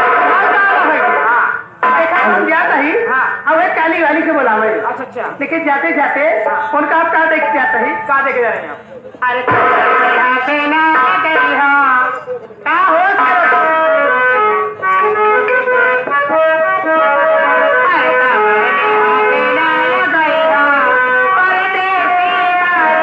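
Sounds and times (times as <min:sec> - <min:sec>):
stage band music: 0:09.4 - 0:12.2, 0:13.2 - 0:23.0.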